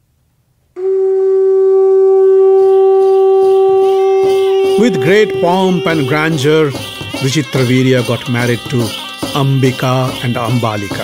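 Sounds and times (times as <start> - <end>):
reedy wind instrument note: 0.8 - 11.0.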